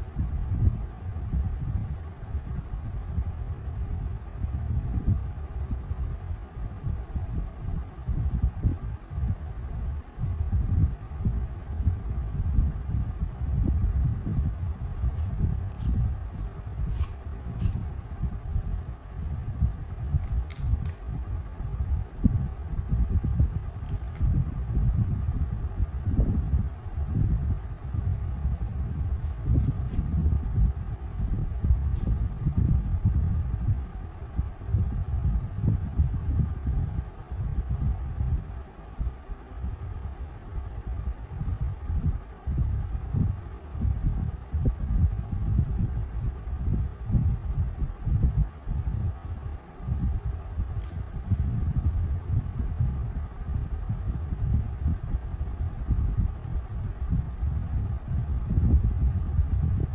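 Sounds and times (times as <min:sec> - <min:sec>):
crayon scrubbing on paper: 0:15.2 - 0:17.9
light clicks: 0:20.2 - 0:21.1.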